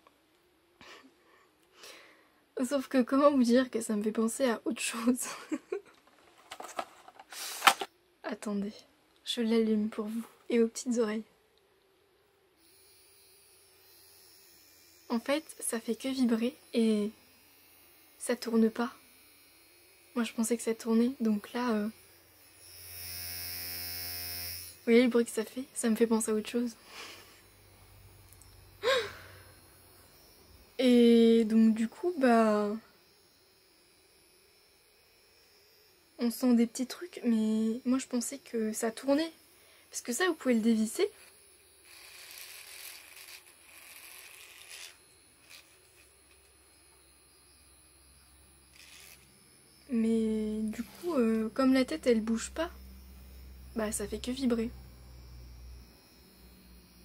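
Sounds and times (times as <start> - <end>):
facial massager buzzing: 12.6 - 57.0.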